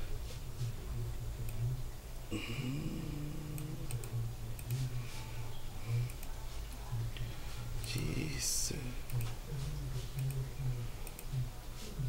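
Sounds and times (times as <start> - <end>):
steady low hum: 0.0 - 12.0
person humming hesitantly: 2.3 - 5.0
computer mouse clicks: 6.0 - 6.4, 10.1 - 10.4, 11.0 - 11.3.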